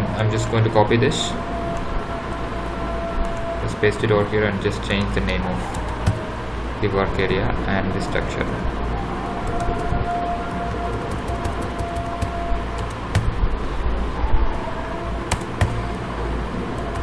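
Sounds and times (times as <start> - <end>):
steady background noise: 0.0 - 17.0
computer keys clicking: 5.7 - 6.2, 9.5 - 9.9, 10.5 - 13.4, 15.3 - 16.0, 16.8 - 17.0.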